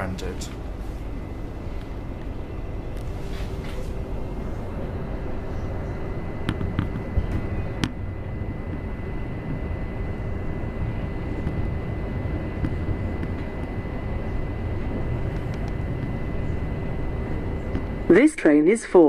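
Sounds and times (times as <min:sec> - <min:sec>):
train wheels rumbling: 0:00.0 - 0:19.0.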